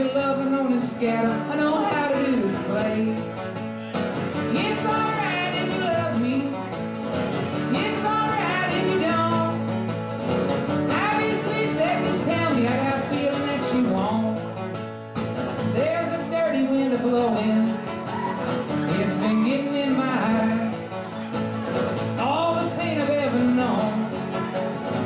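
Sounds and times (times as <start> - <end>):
acoustic guitar strummed: 0.0 - 25.0.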